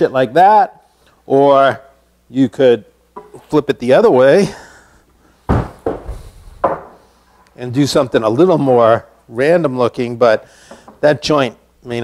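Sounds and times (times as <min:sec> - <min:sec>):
wooden slabs knocking: 0:05.5 - 0:07.0.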